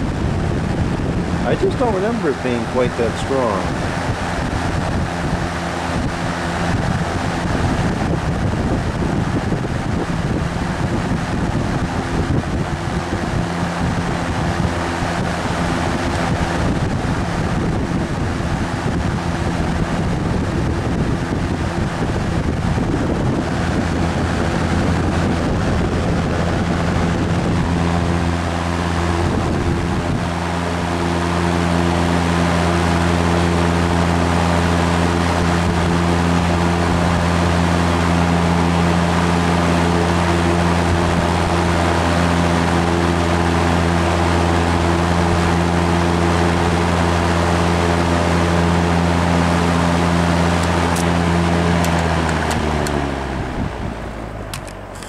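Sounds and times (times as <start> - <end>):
fan air rushing: 0.0 - 55.0
fan motor humming: 0.0 - 55.0.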